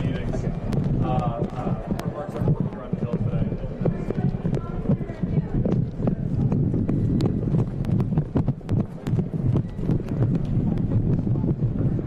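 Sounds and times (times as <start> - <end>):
indistinct talk: 0.0 - 8.2
low rumble: 0.0 - 12.0.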